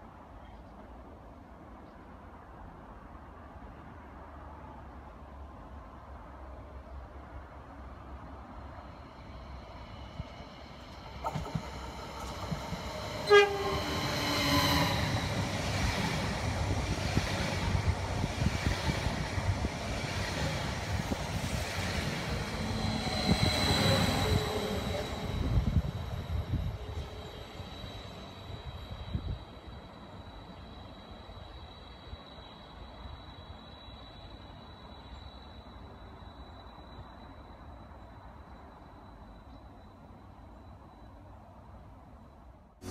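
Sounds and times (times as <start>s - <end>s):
electric train passing: 7.2s - 42.9s
train horn blast: 12.9s - 15.2s.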